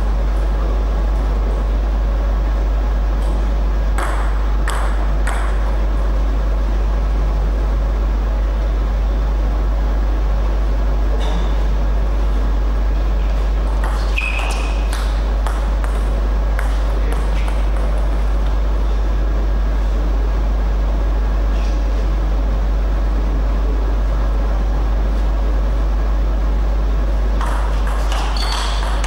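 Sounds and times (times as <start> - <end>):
low electrical hum: 0.0 - 29.0.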